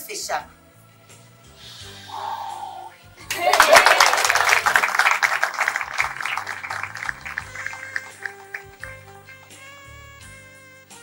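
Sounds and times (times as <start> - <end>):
background music: 0.0 - 11.0
people clapping: 3.2 - 9.6.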